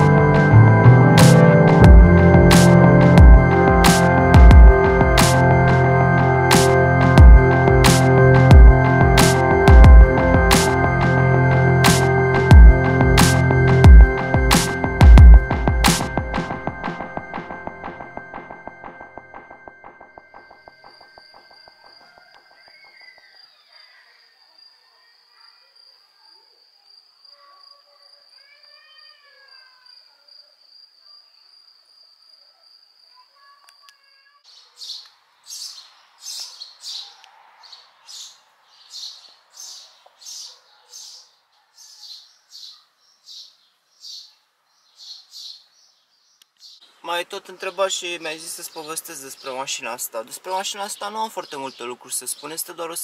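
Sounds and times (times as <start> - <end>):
steady high-pitched whine: 0.0 - 23.2
birds chirping: 0.0 - 24.6, 34.5 - 53.0.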